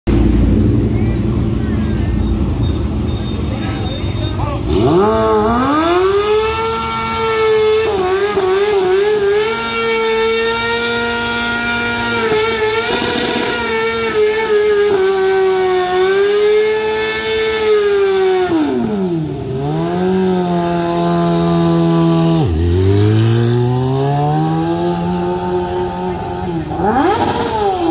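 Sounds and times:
motorcycle engine revving: 0:00.1 - 0:27.9.

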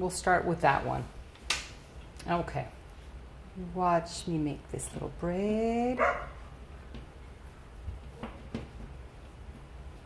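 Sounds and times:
dog barking: 0:06.0 - 0:06.4.

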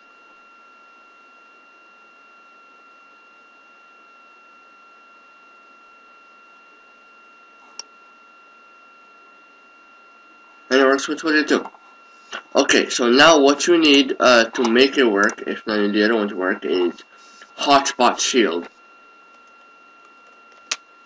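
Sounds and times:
high-pitched whine: 0:00.0 - 0:21.0.

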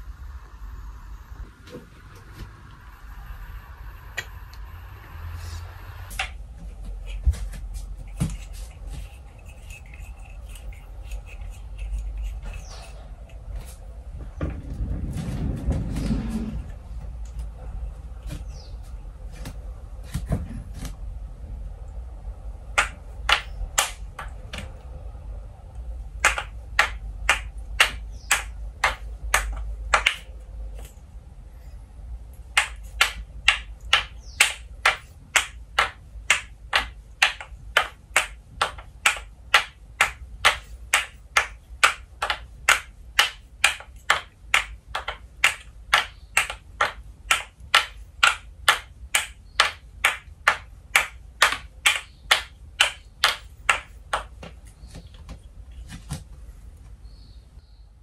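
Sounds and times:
wooden ball clacking on cups: 0:06.1 - 0:13.4, 0:22.6 - 0:24.8, 0:26.2 - 0:31.0, 0:32.4 - 0:55.5.

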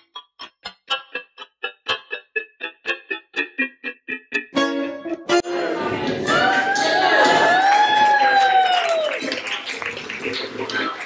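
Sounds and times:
crowd cheering: 0:05.3 - 0:11.0
long whoop: 0:06.3 - 0:09.1
scattered clapping: 0:06.3 - 0:11.0.

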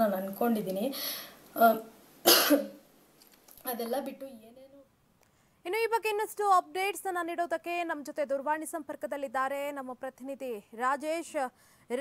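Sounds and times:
woman coughing: 0:02.3 - 0:02.8.

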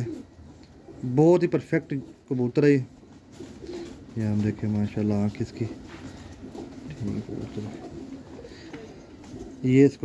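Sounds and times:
pigeons cooing softly: 0:00.0 - 0:10.0.

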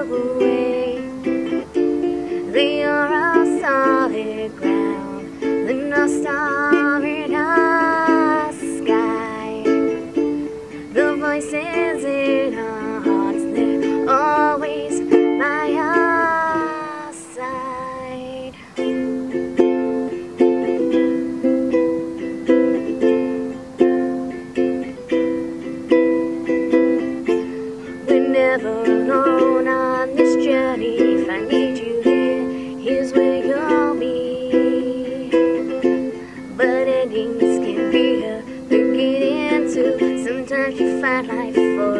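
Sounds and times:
woman singing: 0:00.0 - 0:25.4, 0:26.1 - 0:41.9
ukulele strumming chords: 0:00.0 - 0:41.9.

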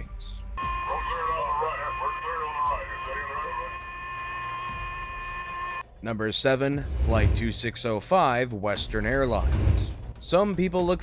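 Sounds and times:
steady high electronic tone: 0:00.6 - 0:05.8.

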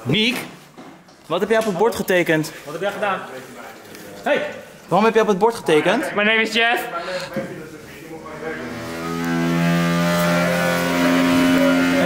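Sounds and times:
higher pipe tone: 0:08.2 - 0:12.0
water pipe humming drone: 0:08.2 - 0:12.0.

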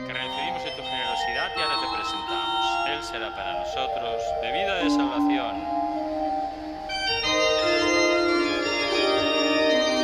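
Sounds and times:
organ chords: 0:00.0 - 0:10.0.

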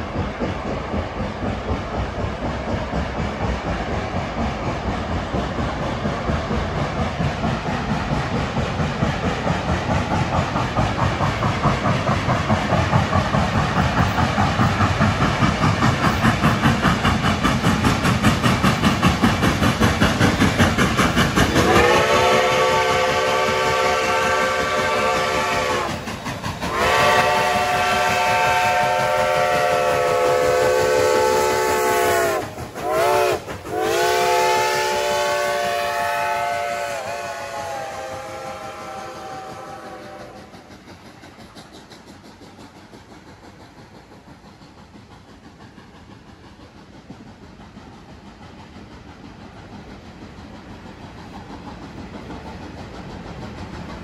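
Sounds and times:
steam locomotive exhaust chuffs: 0:00.0 - 0:54.0
steam whistle blasts: 0:21.6 - 0:26.0, 0:26.7 - 0:40.6.

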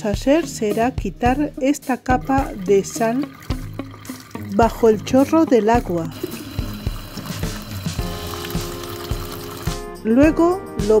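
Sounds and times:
background music with steady beat: 0:00.0 - 0:11.0
tap water splashing into colander: 0:02.1 - 0:09.8.

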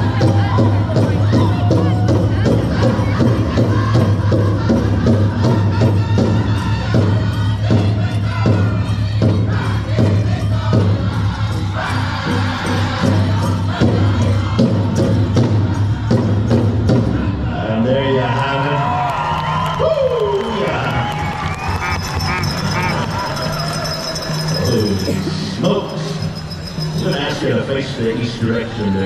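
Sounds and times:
big drum beat: 0:00.0 - 0:11.4
drum group singing: 0:00.0 - 0:17.6, 0:21.6 - 0:27.6
arena crowd noise: 0:00.0 - 0:29.0.

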